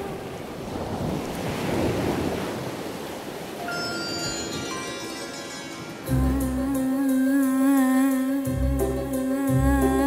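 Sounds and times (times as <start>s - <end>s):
ocean surf washing onto beach: 0.0s - 6.2s
sustained musical tones: 3.6s - 10.0s.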